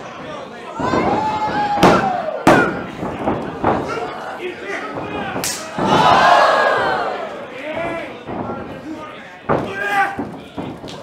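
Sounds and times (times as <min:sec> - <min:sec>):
wrestling impacts in the ring: 0:00.2 - 0:11.0
crowd shouting: 0:00.7 - 0:03.0, 0:03.7 - 0:08.2.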